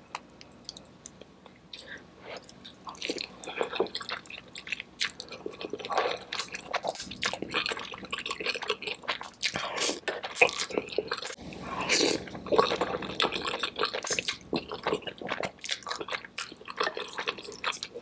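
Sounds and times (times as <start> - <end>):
slurping and chewing noodles: 1.8 - 18.0.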